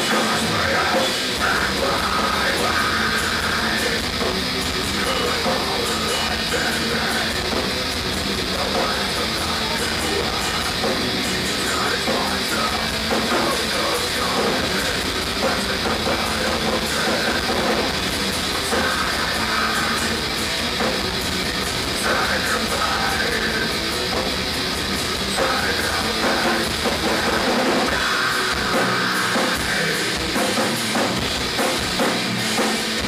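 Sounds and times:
distorted electric guitars: 0.0s - 33.0s
drums: 0.0s - 33.0s.

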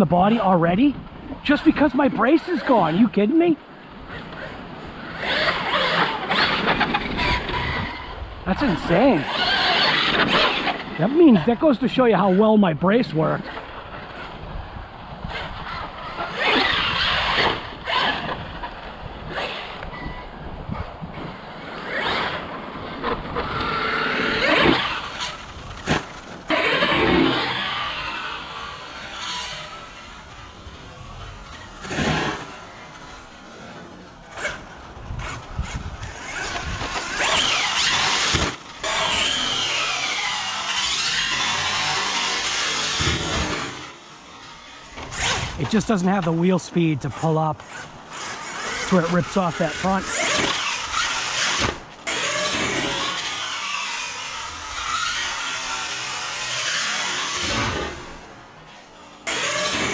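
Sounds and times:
electric motor whine: 13.5s - 46.3s, 47.6s - 59.9s.

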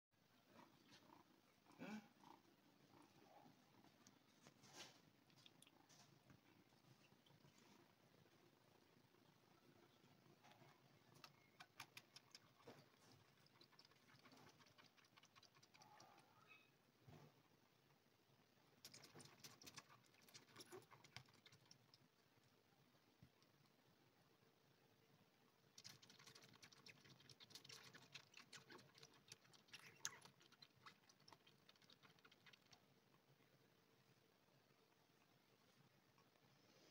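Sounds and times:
faint handling sounds: 0.2s - 8.6s
kitten suckling from bottle: 10.4s - 16.3s, 18.8s - 22.2s, 25.6s - 33.3s.

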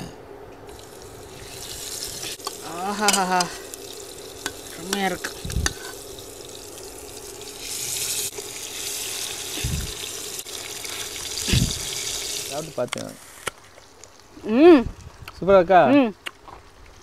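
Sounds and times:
steady hum: 0.0s - 10.5s
fish sizzling in oil: 0.7s - 14.4s.

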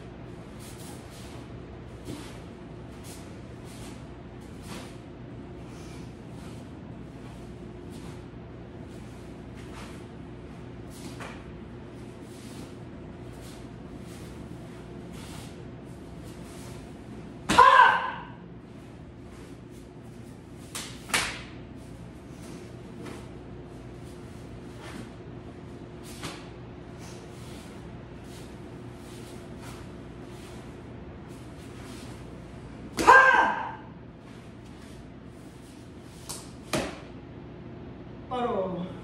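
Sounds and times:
loud shout: 17.5s - 18.4s, 33.0s - 33.9s.

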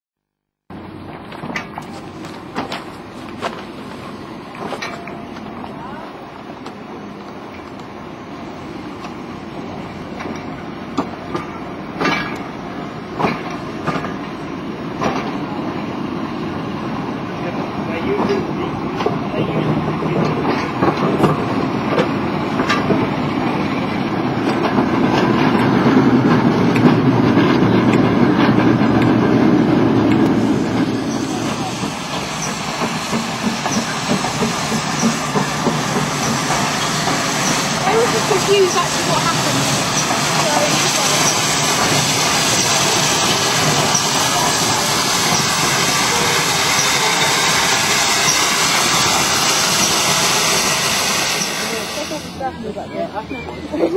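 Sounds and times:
railway coaches rumbling: 0.7s - 53.9s
wheels clicking over rail joints: 10.1s - 12.5s, 24.2s - 44.5s.

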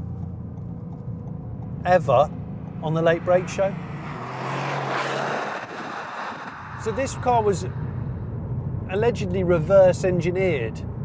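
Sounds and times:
car engine driving past: 2.3s - 8.9s.

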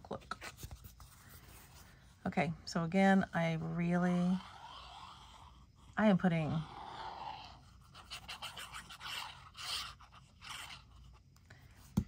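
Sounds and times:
glue spread onto paper scraping: 6.4s - 11.3s.

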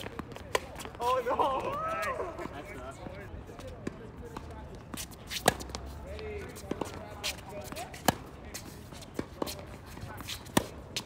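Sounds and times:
tennis ball bouncing on court: 0.0s - 1.7s, 3.8s - 8.4s, 9.2s - 11.0s.

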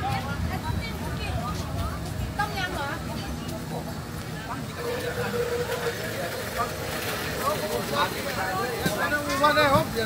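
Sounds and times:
low rumble of street traffic: 0.0s - 10.0s
voices talking: 0.0s - 10.0s.

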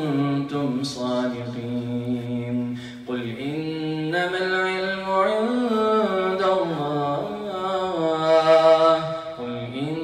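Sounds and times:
man chanting melodically: 0.0s - 10.0s.

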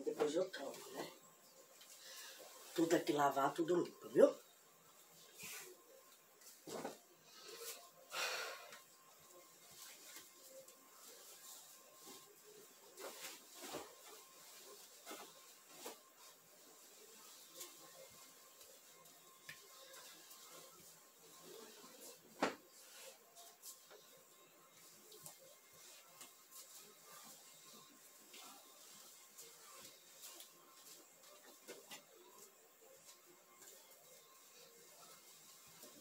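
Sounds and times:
rustling of bedding and clothes: 0.0s - 36.0s.

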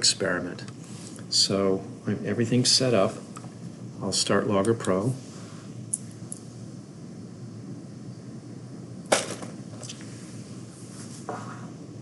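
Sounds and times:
magnets landing with sharp clack: 9.1s - 10.0s.

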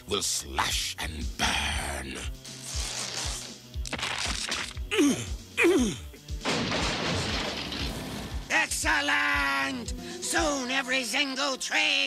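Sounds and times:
cartoon timber crash: 6.4s - 8.7s.

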